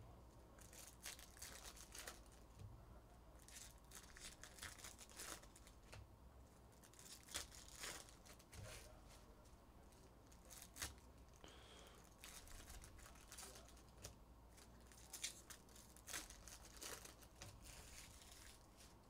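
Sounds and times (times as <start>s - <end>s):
cards rustling: 0.6s - 2.5s, 3.4s - 6.0s, 6.8s - 8.9s, 9.9s - 19.0s
foil wrappers crinkling and tearing: 0.6s - 2.6s, 3.4s - 6.0s, 6.7s - 8.8s, 10.2s - 18.9s.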